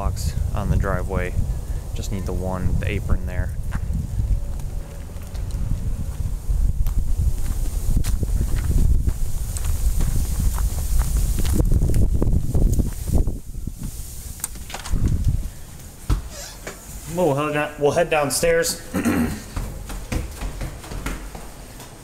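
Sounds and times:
wind noise on microphone: 0.0 - 16.6
footsteps on concrete: 3.5 - 14.0, 18.9 - 22.0.

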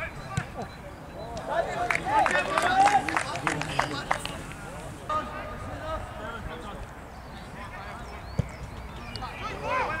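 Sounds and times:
men shouting and calling: 1.4 - 6.4, 9.3 - 10.0.

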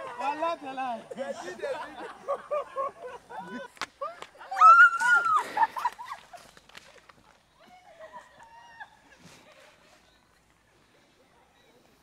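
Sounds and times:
footsteps on paved path: 5.3 - 11.2.

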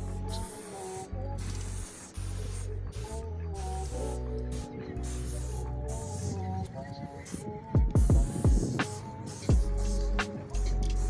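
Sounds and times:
music beat with heavy bass: 0.0 - 4.4, 7.8 - 11.0
aerosol spray can hissing: 0.0 - 11.0.

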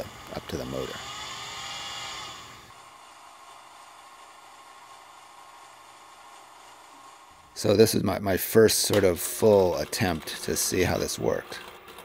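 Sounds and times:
small motor whirring: 0.0 - 12.0.

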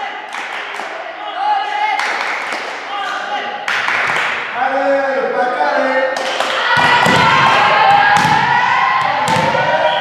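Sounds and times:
volleyball thuds in echoing hall: 6.2 - 10.0.

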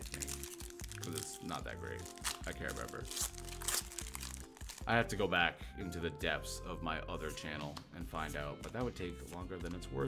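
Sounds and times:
foil wrapper crinkling: 0.0 - 4.9.

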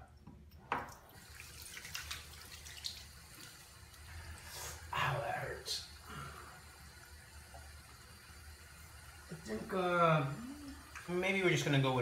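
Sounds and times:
water splashing on face: 0.9 - 4.1.

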